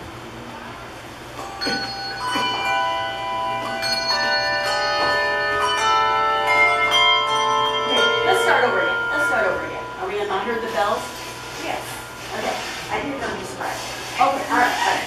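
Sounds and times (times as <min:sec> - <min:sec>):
handbells ringing: 0:01.4 - 0:13.5.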